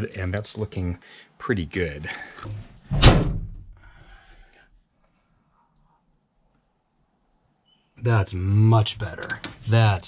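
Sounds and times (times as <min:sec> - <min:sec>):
tailgate shutting thunk: 0:02.9 - 0:03.6.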